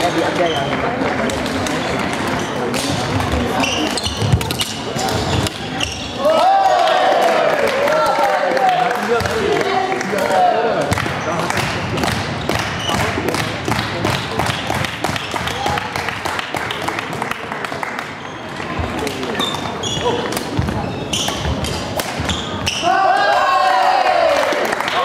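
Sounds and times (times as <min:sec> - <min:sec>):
chatter of people: 0:00.0 - 0:23.0
shoe squeaks: 0:00.3 - 0:00.9, 0:03.3 - 0:06.2, 0:18.2 - 0:22.9.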